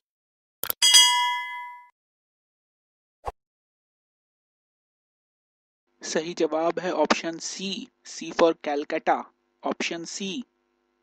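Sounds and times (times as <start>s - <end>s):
bell-like notification ding: 0.8s - 1.9s.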